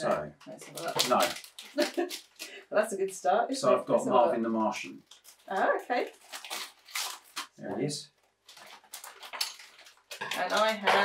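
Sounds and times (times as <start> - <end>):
plastic bags crinkling: 0.0 - 2.6, 4.6 - 11.0
paper leaflet rustling: 8.2 - 10.8.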